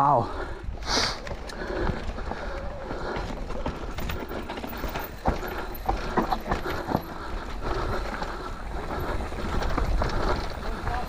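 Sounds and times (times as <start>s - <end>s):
bike clattering over rough trail: 0.6s - 11.0s.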